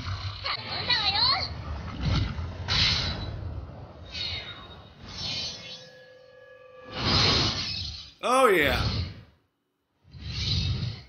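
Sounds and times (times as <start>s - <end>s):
character speaking: 8.2s - 9.0s.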